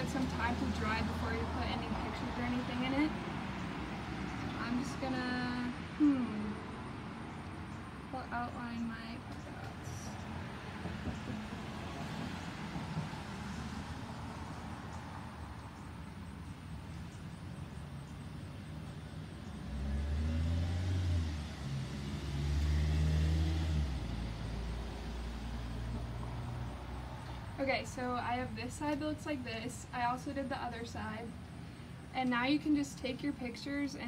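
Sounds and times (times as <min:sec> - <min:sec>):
vehicle engine rumbling past: 0:00.0 - 0:32.1.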